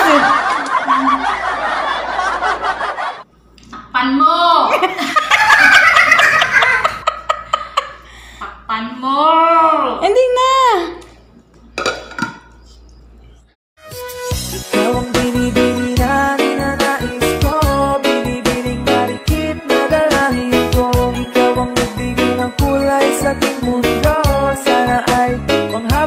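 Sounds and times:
background music: 0:13.8 - 0:26.0.

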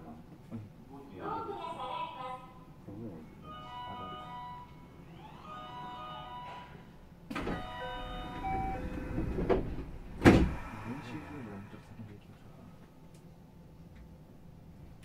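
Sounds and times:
chime melody: 0:03.4 - 0:04.8, 0:05.4 - 0:06.8
loud thump: 0:09.5 - 0:10.6.

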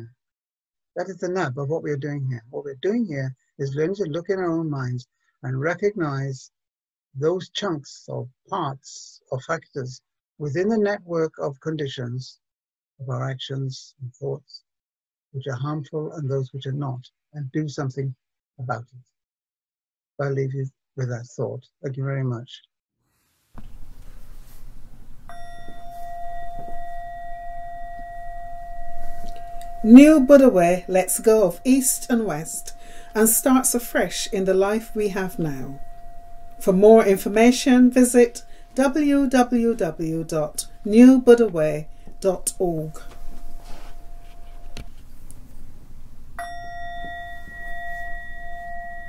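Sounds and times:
singing bowl ringing: 0:25.2 - 0:49.0.

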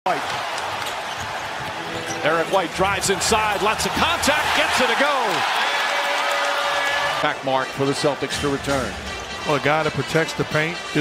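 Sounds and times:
arena crowd noise: 0:00.1 - 0:11.0.

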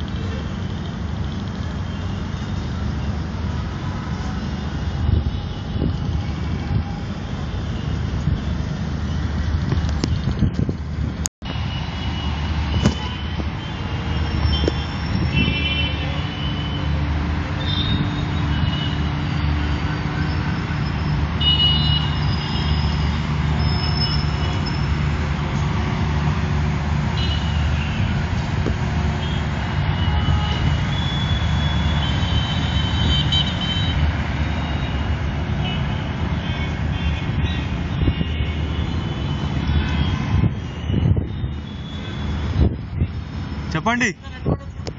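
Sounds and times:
city traffic rumble: 0:00.0 - 0:44.9.

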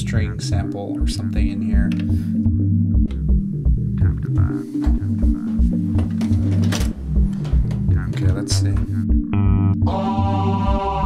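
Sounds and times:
bass line: 0:00.0 - 0:11.0
house music loop: 0:00.0 - 0:11.0
kick drum: 0:01.0 - 0:09.8.

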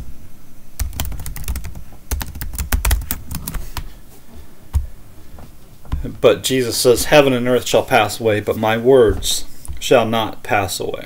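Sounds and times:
typing on computer keyboard: 0:00.8 - 0:03.6.

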